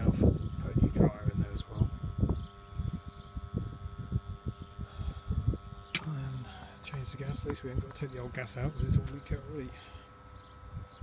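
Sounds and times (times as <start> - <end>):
wind buffeting microphone: 0.0 - 9.5
sharp click: 5.9 - 6.2.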